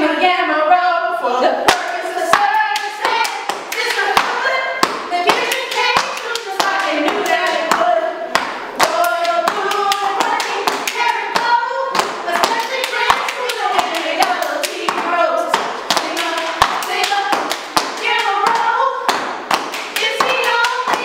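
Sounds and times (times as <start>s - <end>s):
women chanting: 0.0s - 19.2s, 19.9s - 21.0s
hand claps: 1.7s - 21.0s.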